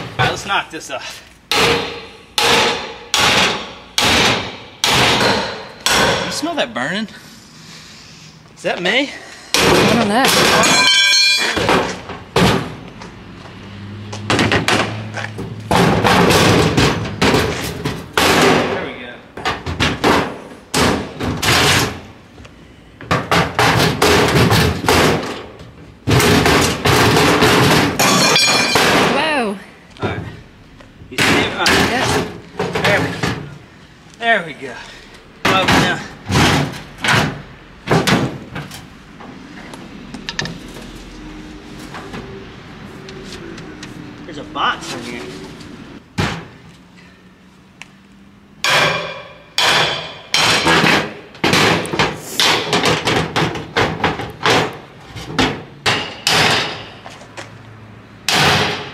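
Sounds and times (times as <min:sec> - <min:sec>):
sledgehammer banging metal: 0:01.5 - 0:06.6, 0:09.5 - 0:12.8, 0:14.3 - 0:22.2, 0:23.0 - 0:29.4, 0:31.1 - 0:33.6, 0:35.4 - 0:39.2, 0:48.6 - 0:57.2, 0:58.2 - 0:58.9
metal scraping and squealing: 0:40.4 - 0:46.0.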